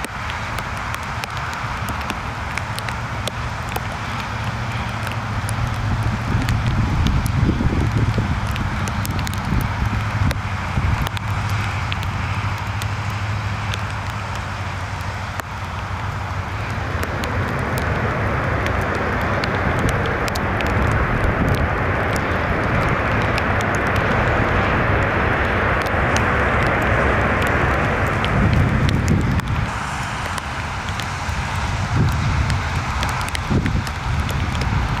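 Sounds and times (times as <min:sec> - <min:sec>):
jet engine rumble: 0:00.0 - 0:35.0.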